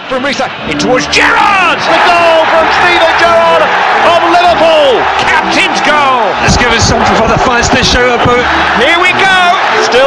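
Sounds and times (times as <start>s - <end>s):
crowd noise: 0.0s - 10.0s
man commentating excitedly: 0.1s - 10.0s.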